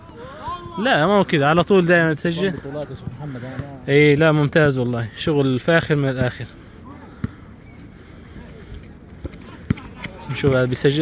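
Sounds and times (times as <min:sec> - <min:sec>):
faint players' voices: 0:00.0 - 0:11.0.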